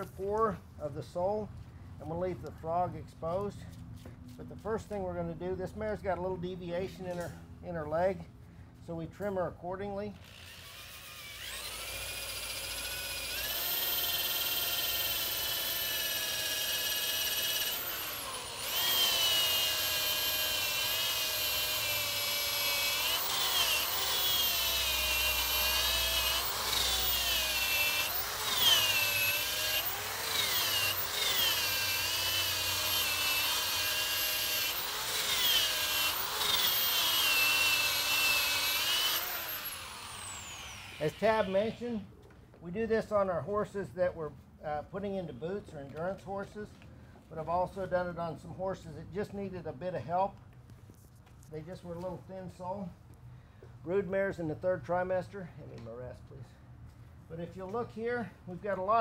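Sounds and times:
rotary tool grinding hoof: 0:10.2 - 0:41.8.

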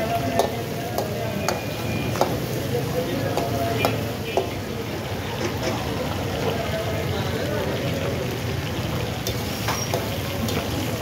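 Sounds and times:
meat sizzling in a wok: 0:00.0 - 0:11.0
metal ladle knocking on pan: 0:00.3 - 0:02.5, 0:03.3 - 0:04.6.

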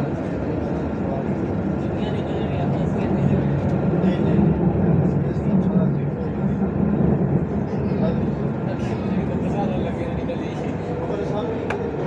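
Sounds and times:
people's voices: 0:00.0 - 0:12.0
tram rumbling: 0:00.0 - 0:12.0.

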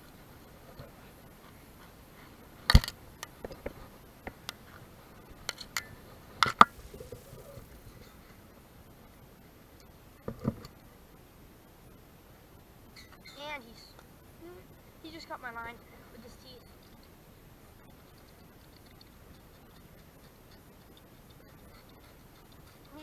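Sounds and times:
faint steady background noise: 0:00.0 - 0:23.0.

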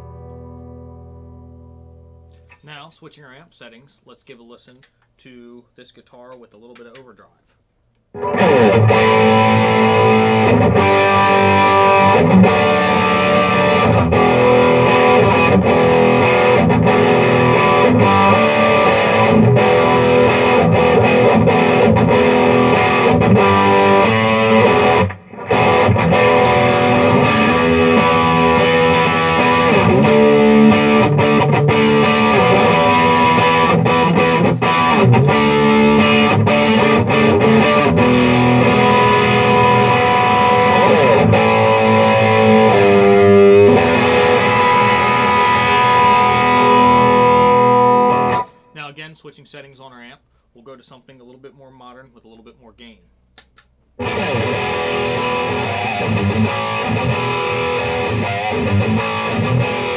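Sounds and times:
overdriven electric guitar: 0:00.0 - 0:02.6, 0:08.1 - 0:48.8, 0:54.0 - 0:59.9.

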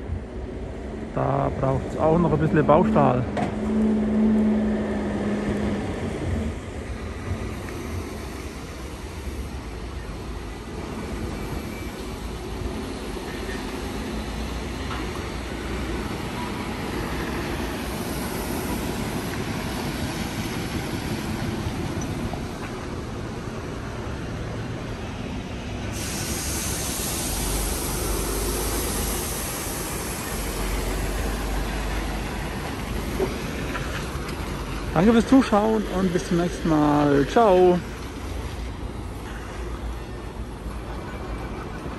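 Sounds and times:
construction machinery: 0:00.0 - 0:41.9
rail traffic noise: 0:00.0 - 0:41.9
sharp hiss: 0:25.4 - 0:40.6.

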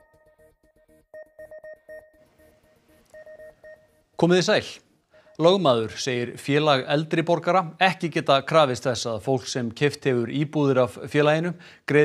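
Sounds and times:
short electronic beeping tones: 0:01.2 - 0:04.1.

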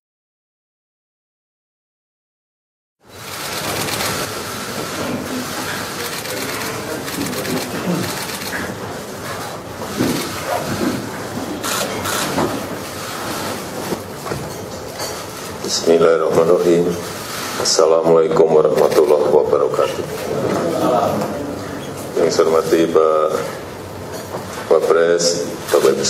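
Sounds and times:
chairs shifting: 0:03.3 - 0:15.6
low murmur of voices: 0:03.8 - 0:26.0.

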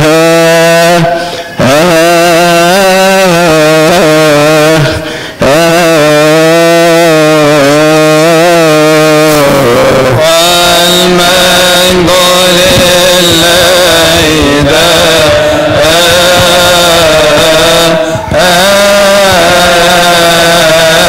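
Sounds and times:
man chanting: 0:00.0 - 0:21.0.

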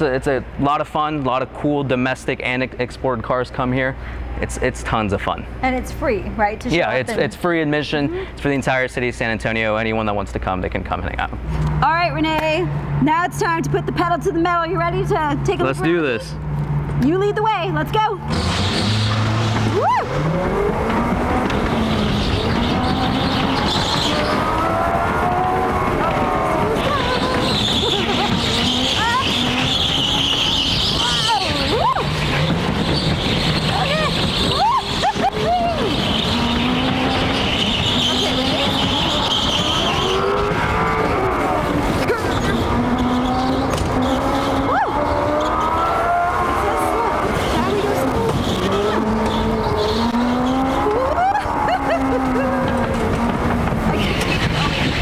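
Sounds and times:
electric go-kart motors whining: 0:05.7 - 0:55.0
tyre squeal: 0:18.3 - 0:53.3.

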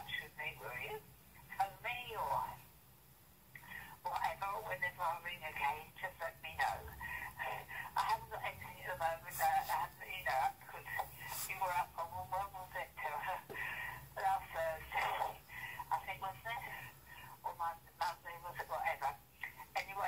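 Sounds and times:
woman's voice on answerphone: 0:00.0 - 0:02.7, 0:03.6 - 0:20.0.

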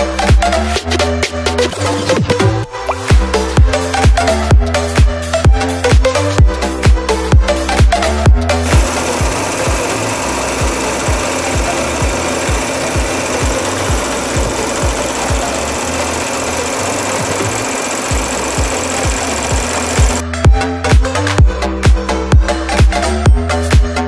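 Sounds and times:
car engine running: 0:08.6 - 0:20.2.

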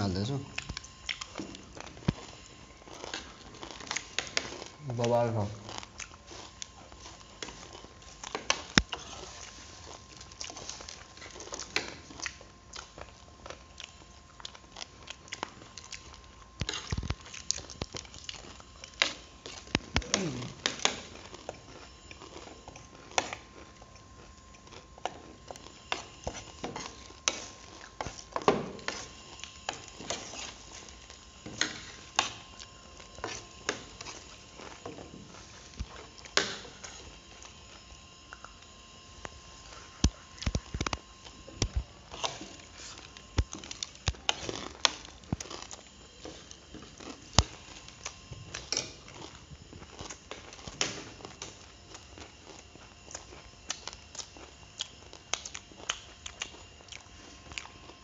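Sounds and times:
chewing: 0:00.5 - 0:58.0.

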